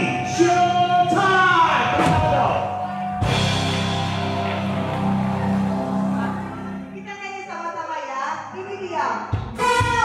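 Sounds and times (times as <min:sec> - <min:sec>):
live band playing chords: 0:00.0 - 0:07.0.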